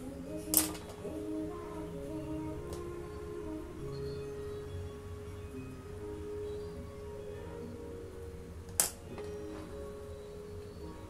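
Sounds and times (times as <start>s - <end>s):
soft background music: 0.0s - 11.0s.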